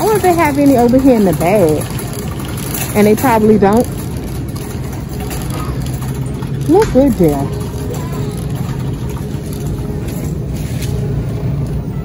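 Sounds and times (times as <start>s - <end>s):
refrigerated cases humming: 0.0s - 12.0s
shopping cart rolling: 0.0s - 12.0s.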